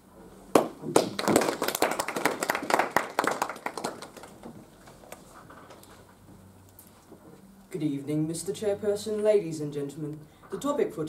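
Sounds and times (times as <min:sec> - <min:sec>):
small group clapping: 0:00.5 - 0:05.2.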